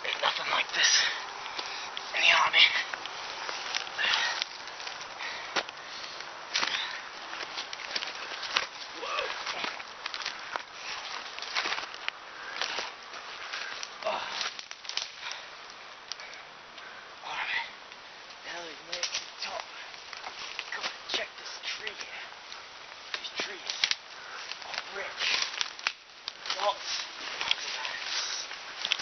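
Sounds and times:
handling crackles: 0:00.0 - 0:16.9, 0:17.8 - 0:29.0
rustling of vegetation: 0:00.0 - 0:29.0.

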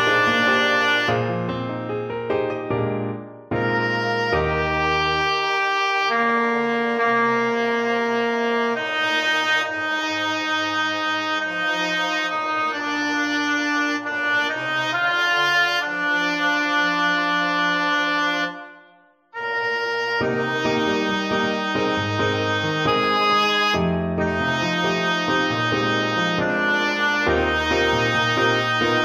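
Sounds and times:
low piano chord: 0:00.0 - 0:05.3, 0:20.3 - 0:29.0
synthesized brass-like chords: 0:00.0 - 0:29.0.

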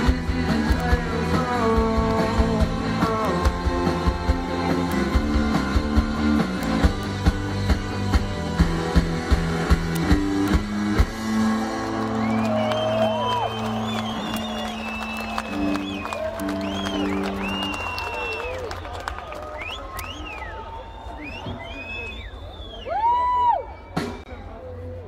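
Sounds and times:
electric guitar and bass notes: 0:00.0 - 0:18.0
crowd cheering: 0:09.9 - 0:24.6
whistles and whoops: 0:12.0 - 0:24.2.

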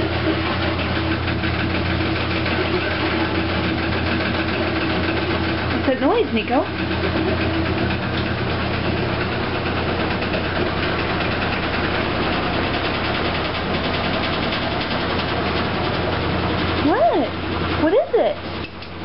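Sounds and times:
washing machine humming and pulsing: 0:00.0 - 0:19.0.

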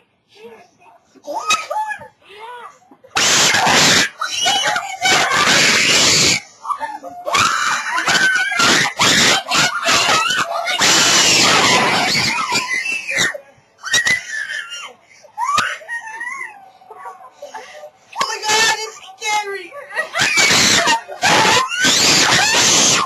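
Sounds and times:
young people screaming: 0:03.2 - 0:16.7, 0:20.0 - 0:23.0.

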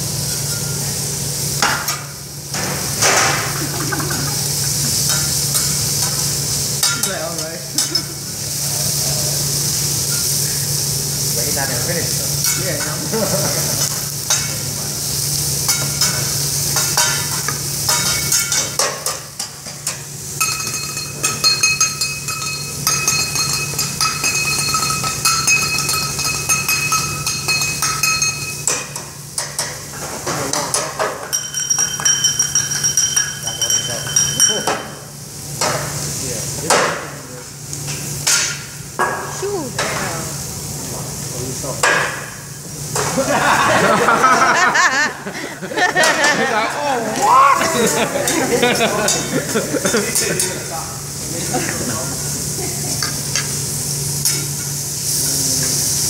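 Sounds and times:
food sizzling on a griddle: 0:00.0 - 0:56.0
high ringing tone: 0:20.4 - 0:28.7, 0:31.3 - 0:35.1.

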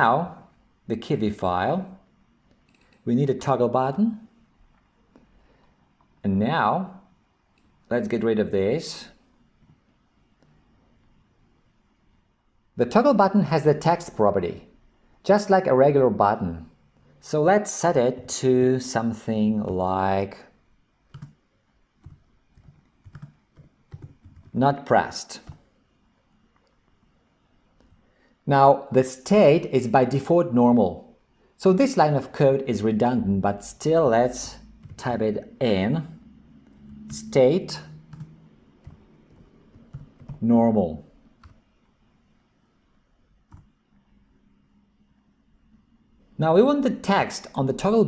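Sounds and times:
keyboard keystroke clicks: 0:21.1 - 0:21.4.

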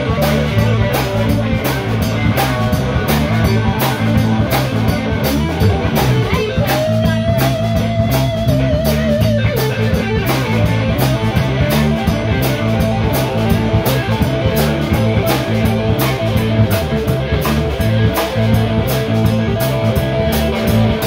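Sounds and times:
bass guitar: 0:00.0 - 0:21.0
drum kit: 0:00.0 - 0:21.0
electric guitar soloing: 0:00.0 - 0:21.0.

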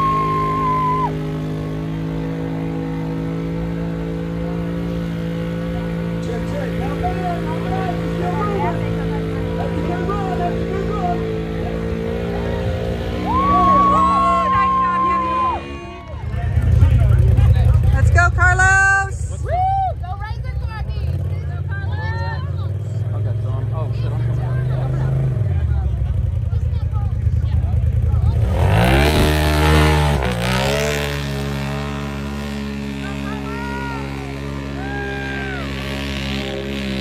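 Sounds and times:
voices calling out: 0:00.0 - 0:02.6, 0:05.6 - 0:29.5, 0:31.9 - 0:36.8
engines running hard: 0:00.0 - 0:37.0.

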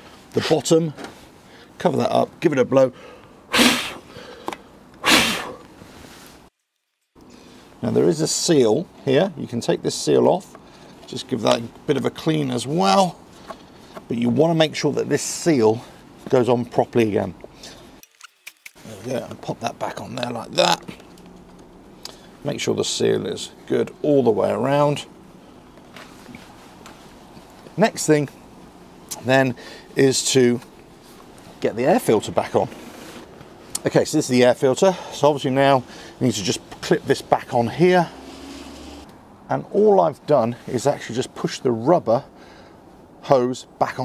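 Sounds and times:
puffs of breath blown: 0:03.0 - 0:06.1.

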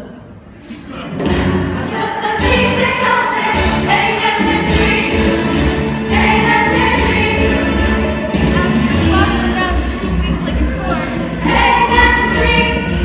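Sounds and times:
young chorus singing: 0:01.7 - 0:13.0.

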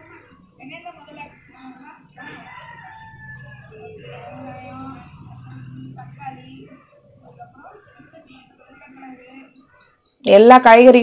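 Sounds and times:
rooster crowing: 0:01.2 - 0:08.2.

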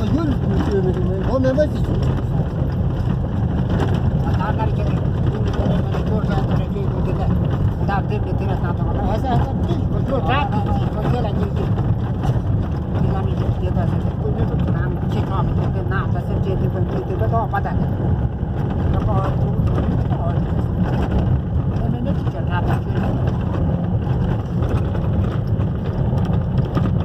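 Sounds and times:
vehicle rumbling over rough track: 0:00.0 - 0:27.0.

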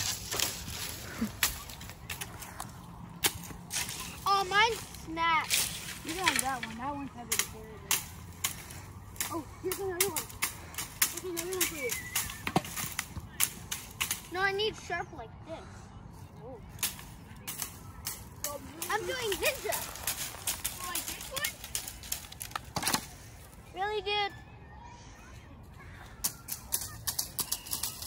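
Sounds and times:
sticks whacking dry brush: 0:00.0 - 0:14.4, 0:16.8 - 0:23.2.

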